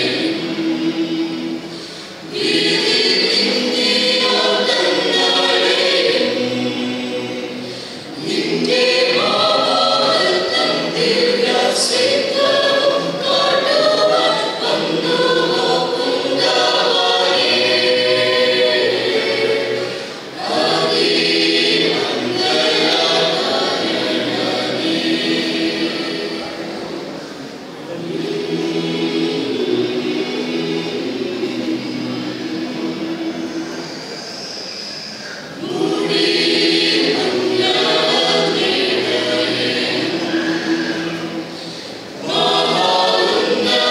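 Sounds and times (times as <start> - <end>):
mixed choir singing a carol: 0.0 - 43.9.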